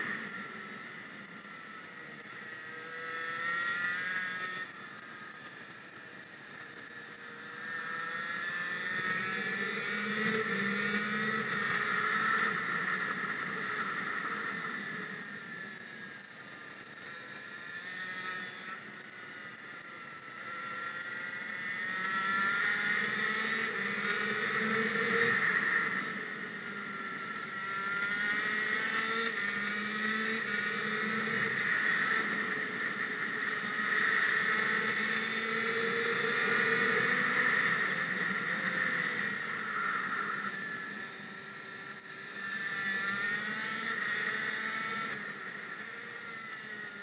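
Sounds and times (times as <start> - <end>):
kart engine revving: 0.0 - 5.6, 6.4 - 47.0.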